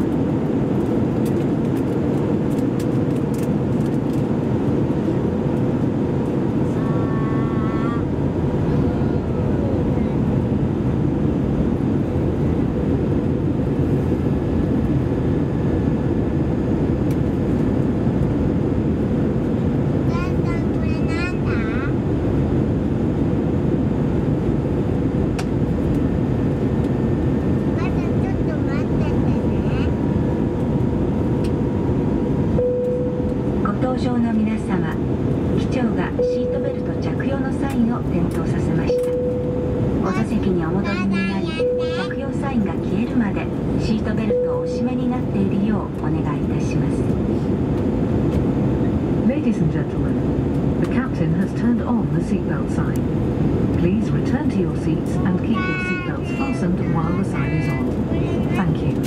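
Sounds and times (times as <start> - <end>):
jet engine noise in cabin: 0.0 - 59.0
cabin announcement: 32.6 - 47.2, 49.1 - 59.0.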